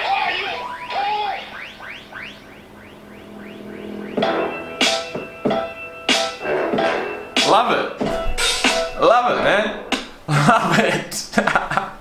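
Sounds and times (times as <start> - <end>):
rising electronic chirps: 0.0 - 10.4.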